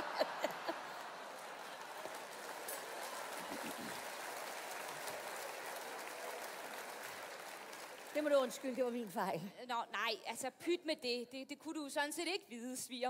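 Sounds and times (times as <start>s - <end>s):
audience laughing: 0.0s - 2.0s
audience clapping: 0.0s - 9.5s.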